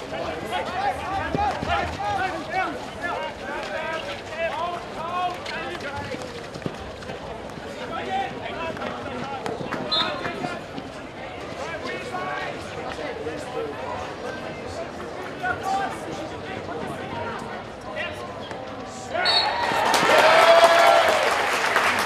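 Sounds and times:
players shouting: 0.0s - 5.8s.

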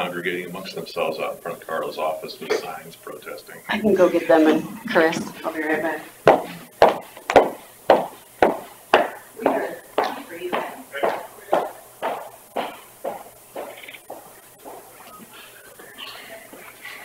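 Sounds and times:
footsteps walking away: 4.6s - 17.0s.

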